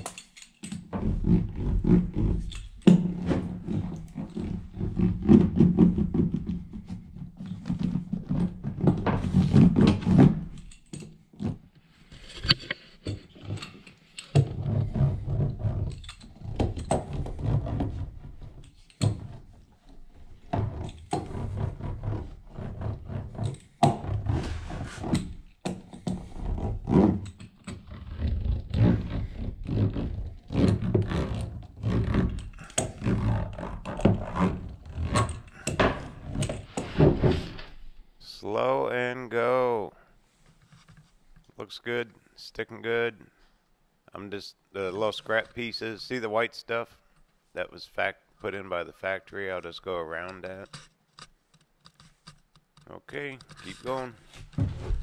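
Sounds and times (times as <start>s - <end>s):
hand roller rumbling over panels: 0.9s - 10.6s, 20.2s - 37.7s.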